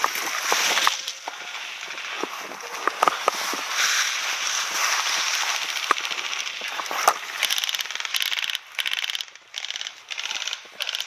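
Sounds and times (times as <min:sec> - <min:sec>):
rustling of dry grass and brush: 0:00.0 - 0:11.0
airsoft rifle bursts: 0:05.4 - 0:11.0.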